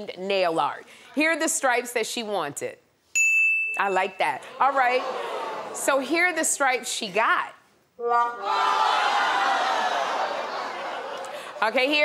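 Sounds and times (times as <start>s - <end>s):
studio audience groaning: 4.5s - 5.8s, 8.0s - 11.6s.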